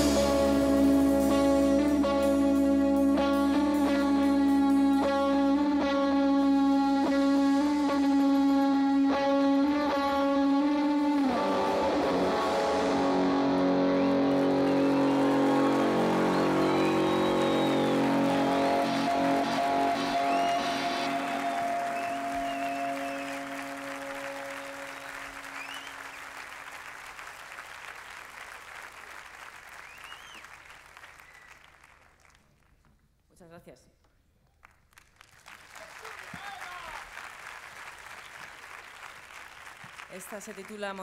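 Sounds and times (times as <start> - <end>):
guitar chord ringing: 0.0 - 25.2
audience applauding: 11.0 - 32.8, 34.6 - 41.0
whistles: 13.9 - 26.4, 29.8 - 31.8.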